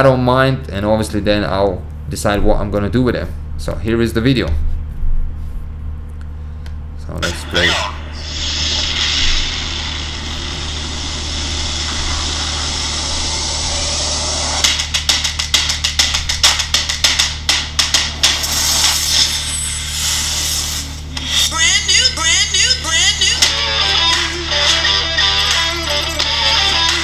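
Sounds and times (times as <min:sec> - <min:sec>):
low hum: 0:00.6 - 0:27.0
rocket engine roar: 0:07.2 - 0:14.7
music: 0:13.7 - 0:19.5, 0:20.1 - 0:27.0
sharp hits and clicks: 0:14.6 - 0:19.5.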